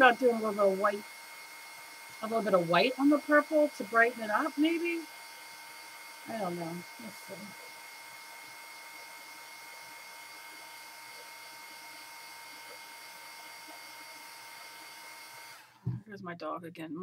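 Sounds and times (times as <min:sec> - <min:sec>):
electric dryer blowing air: 0:00.0 - 0:16.0.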